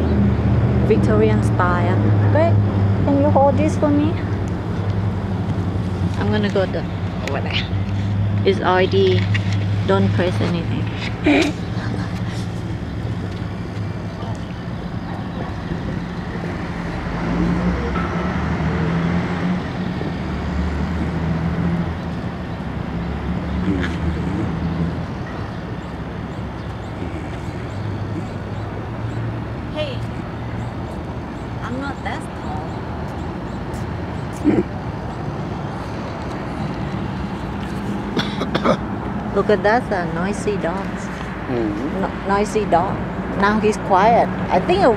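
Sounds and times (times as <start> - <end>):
road noise: 0.0 - 44.9
street traffic: 0.0 - 44.9
vehicle engine hum: 0.0 - 44.9.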